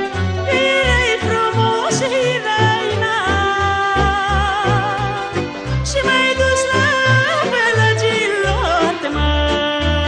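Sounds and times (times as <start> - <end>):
instrumental accompaniment: 0.0 - 10.0
woman singing folk song: 0.4 - 10.0.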